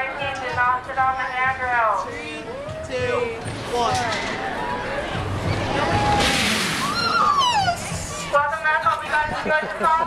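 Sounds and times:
riders screaming: 5.8 - 8.0.

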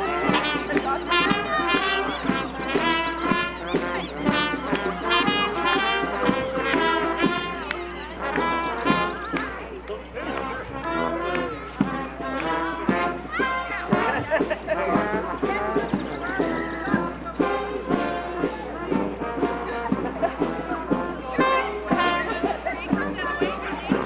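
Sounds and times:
sousaphone: 0.0 - 8.3
brass band marching: 0.0 - 24.0
people chattering: 0.0 - 24.0.

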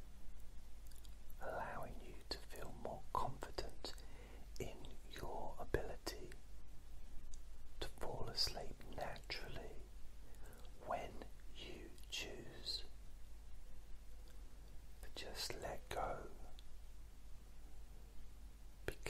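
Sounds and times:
faint low hum: 0.0 - 19.0
man whispering: 1.0 - 6.4, 7.8 - 13.0, 15.0 - 16.7.

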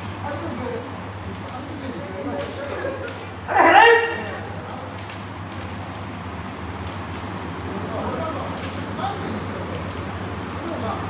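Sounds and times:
steady low hum: 0.0 - 11.0
loud high-pitched shout: 3.5 - 4.4.

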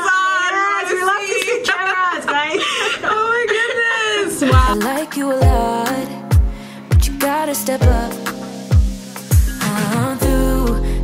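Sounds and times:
women laughing: 1.0 - 4.8.

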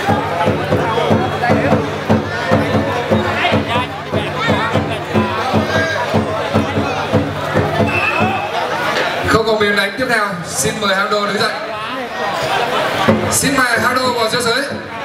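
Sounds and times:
large drum beaten rhythmically: 0.0 - 9.0, 13.0 - 15.0
crowd voices: 0.0 - 15.0.

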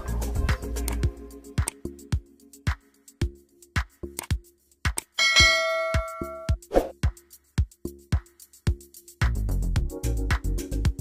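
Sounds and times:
electronic music with kick drum: 0.0 - 11.0
bell-like notification chime: 5.2 - 6.6
short swish: 6.7 - 7.0.

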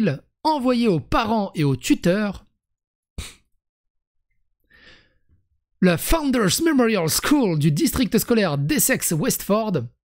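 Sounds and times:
man breathing into microphone: 4.7 - 5.3.

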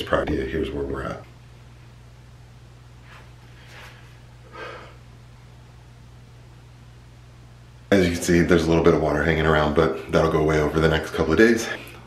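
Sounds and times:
man speaking: 0.0 - 1.3, 7.9 - 11.9
faint low hum: 0.0 - 12.0.

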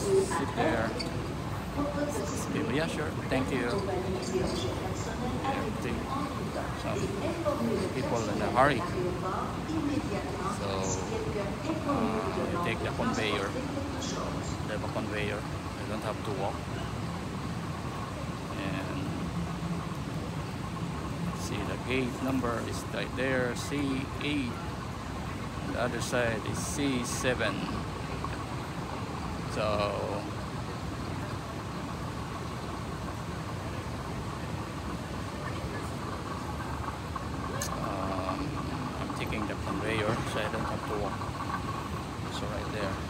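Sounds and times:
distant voices: 0.0 - 43.0
steady low hum: 0.0 - 43.0.

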